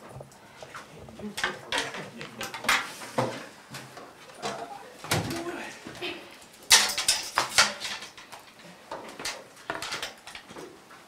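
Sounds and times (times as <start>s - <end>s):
chair-desks and books clattering: 0.0s - 5.9s, 6.6s - 11.0s.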